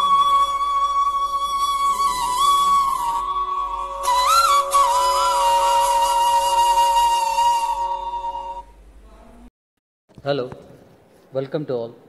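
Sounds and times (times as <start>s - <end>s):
long held flute-like note: 0.0s - 8.9s
steady drone: 0.0s - 9.2s.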